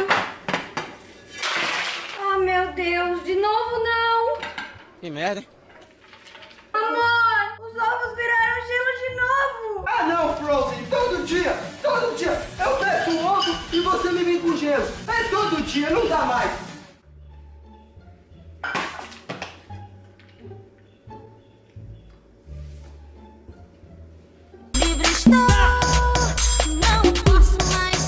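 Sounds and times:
background music: 2.2 - 5.5, 6.6 - 28.0.

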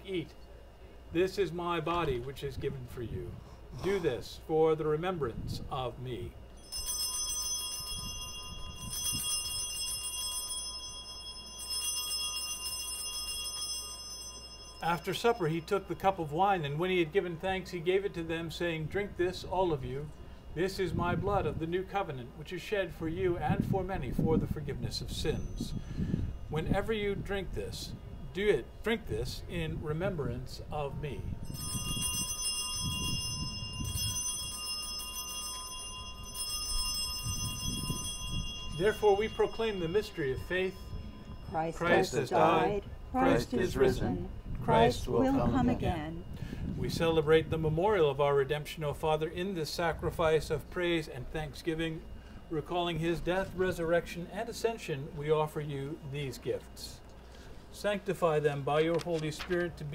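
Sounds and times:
altar bells ringing: 6.6 - 16.6, 25.3 - 26.5, 31.4 - 44.2.

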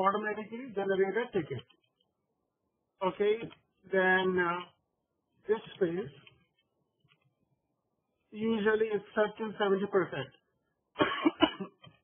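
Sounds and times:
man coughing: 11.0 - 11.8.

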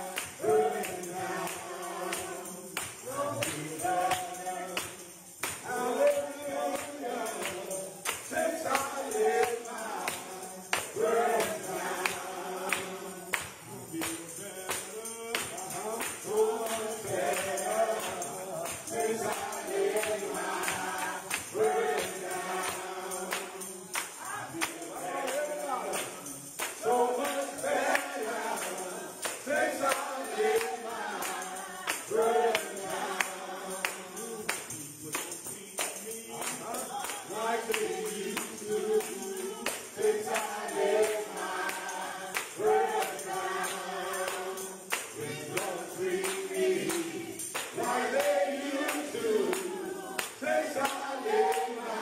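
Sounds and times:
male vocal group singing in harmony: 0.0 - 52.0
percussion beat: 0.0 - 52.0
tambourine: 0.0 - 52.0.

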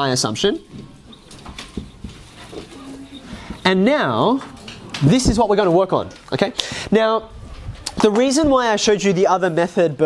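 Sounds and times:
classroom room noise: 0.0 - 10.0
marker squeaking on whiteboard: 0.4 - 5.4.

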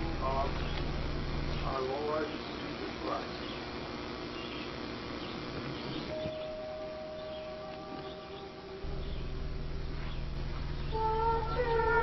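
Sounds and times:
low steady hum: 0.0 - 12.0
steady musical note: 6.1 - 12.0.

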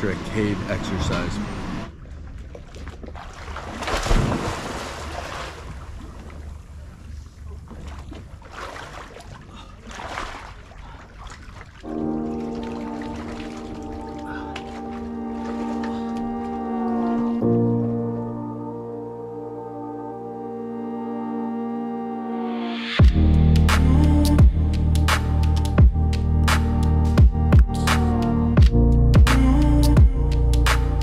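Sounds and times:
water splashing: 0.0 - 18.0
person splashing into water: 2.6 - 6.3, 7.7 - 16.2
ambient music with sustained chords: 11.8 - 31.0.

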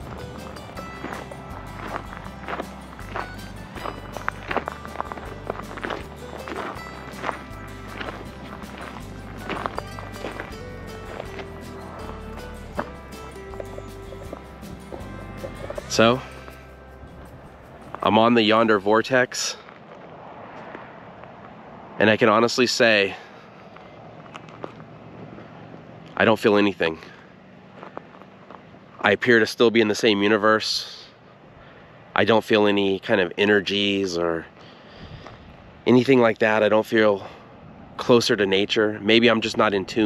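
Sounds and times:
background music with bass line: 0.0 - 18.8
footsteps on loose gravel: 0.0 - 21.5, 23.7 - 25.9, 27.7 - 28.7.

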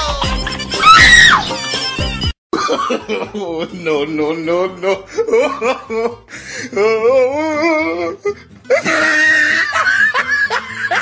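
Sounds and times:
background music: 0.0 - 11.0
person screaming: 0.8 - 1.5.

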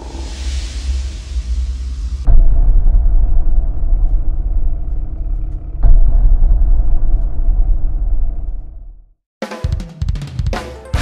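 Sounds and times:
heavy boom: 0.0 - 9.1
deep low rumble: 0.0 - 9.2.

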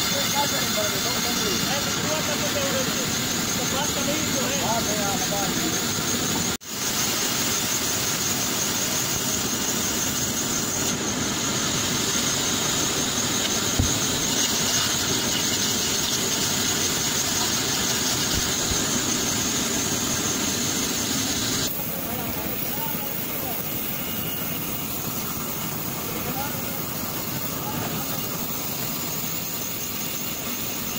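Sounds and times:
band saw cutting wood: 0.0 - 30.9
high-pitched saw whine: 0.0 - 30.9
steady machine drone: 0.0 - 30.9.

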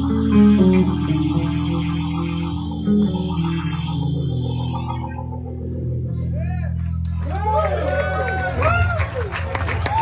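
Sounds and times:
live rock band playing: 0.0 - 6.3
electric guitars: 0.0 - 9.2
bass guitar: 0.0 - 10.0.

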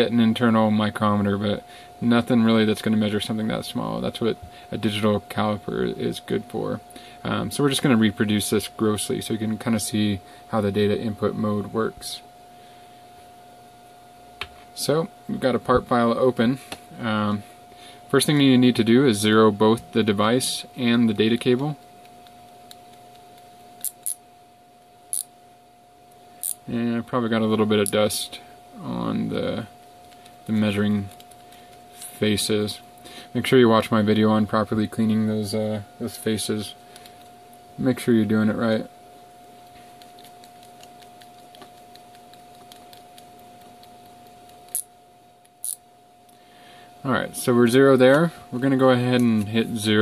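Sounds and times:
sharp high clicks: 26.4 - 26.6, 39.6 - 45.8.

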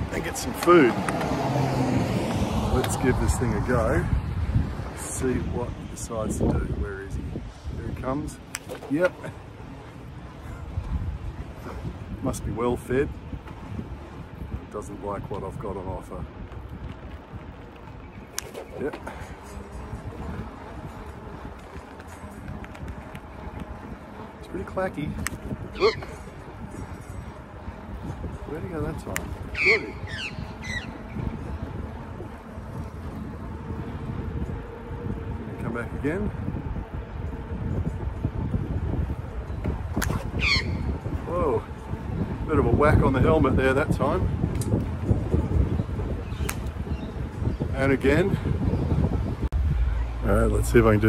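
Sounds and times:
wind rumble on microphone: 0.0 - 51.0
magpie squawking: 29.5 - 31.0, 40.4 - 40.8.

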